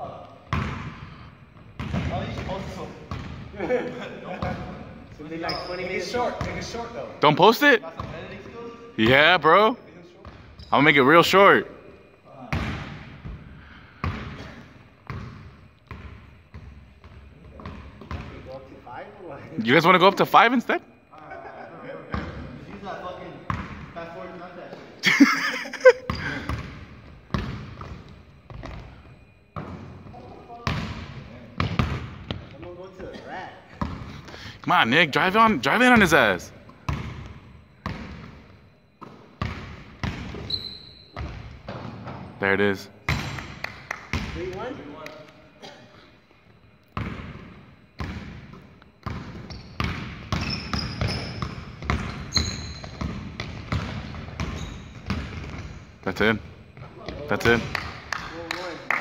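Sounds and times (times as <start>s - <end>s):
sneaker squeaks: 5.1s - 6.8s, 10.0s - 11.1s, 25.9s - 34.2s, 36.6s - 42.4s, 47.0s - 56.0s
basketball bouncing on wood floor: 49.0s - 55.7s.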